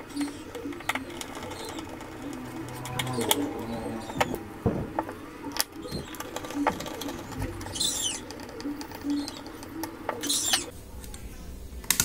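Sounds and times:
rapid clicks and chirps: 0.0s - 10.7s
scratchy bursts: 0.0s - 10.7s.

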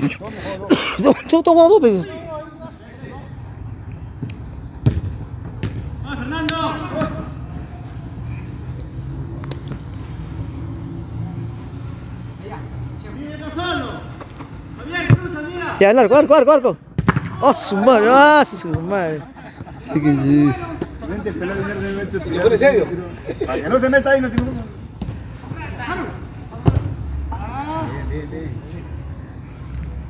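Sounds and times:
ball being kicked: 4.8s - 5.8s, 16.9s - 17.4s
footballers shouting: 5.9s - 8.1s, 13.1s - 28.1s.

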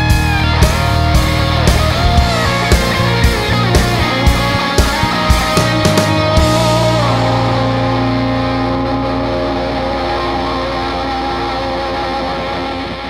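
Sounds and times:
electric guitar chords ringing: 0.0s - 13.0s.

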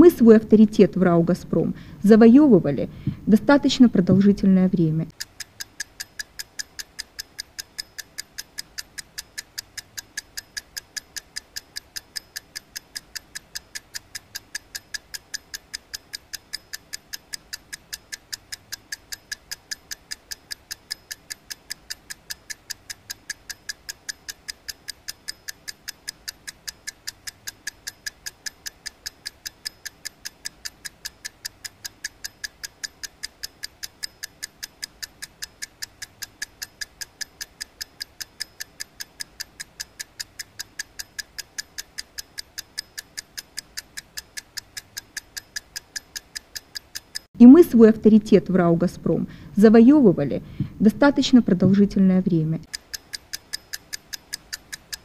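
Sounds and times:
fast mechanical ticking: 0.0s - 55.0s.

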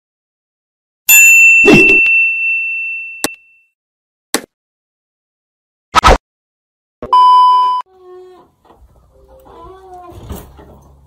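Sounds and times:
high test-tone beep: 1.1s - 3.4s, 7.0s - 7.8s.

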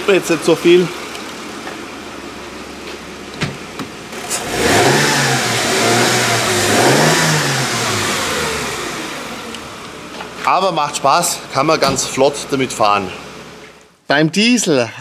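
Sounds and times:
car engine idling and revving: 0.0s - 13.9s.

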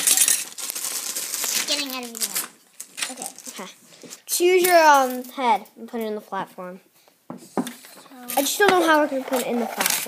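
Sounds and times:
paper and plastic toy pieces rustling: 0.0s - 5.4s, 7.6s - 10.0s.

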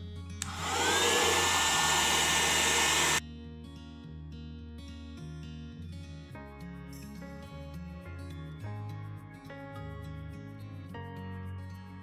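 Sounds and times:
hair dryer blowing: 0.4s - 3.2s
soft background music: 3.3s - 12.0s.

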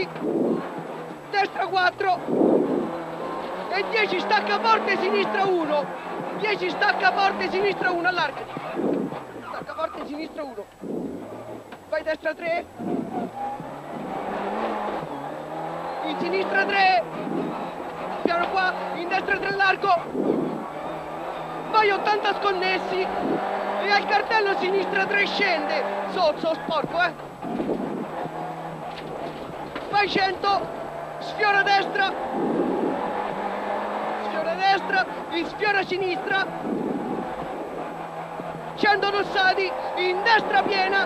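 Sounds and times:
rally car engine revving: 0.0s - 41.0s
road noise: 0.0s - 41.0s.

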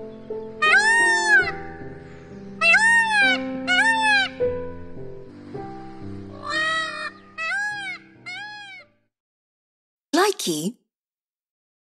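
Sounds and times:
background music with held notes: 0.0s - 9.1s
peacock calling: 0.5s - 4.6s, 6.0s - 8.9s.

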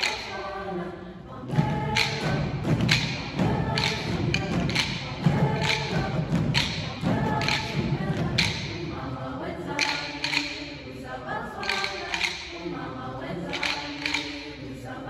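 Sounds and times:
mixed choir singing: 0.0s - 15.0s
sharp percussive hits: 1.5s - 9.1s, 9.8s - 10.9s, 11.6s - 12.8s, 13.5s - 14.6s.

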